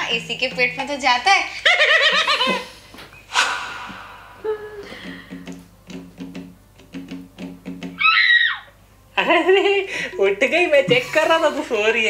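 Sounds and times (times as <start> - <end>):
hissing swish: 3.3 - 4.9.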